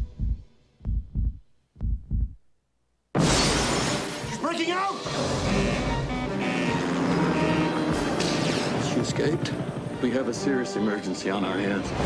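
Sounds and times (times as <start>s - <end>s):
heartbeat double thumps: 0.0s - 2.5s
loud crash: 3.2s - 4.4s.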